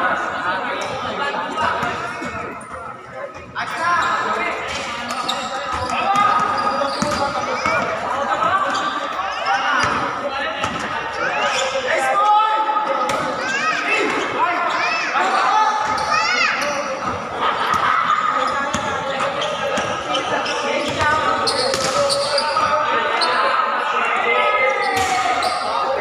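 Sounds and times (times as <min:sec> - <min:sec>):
players calling out: 0:00.0 - 0:26.0
sneakers squeaking: 0:00.8 - 0:12.1, 0:13.1 - 0:23.5, 0:24.6 - 0:26.0.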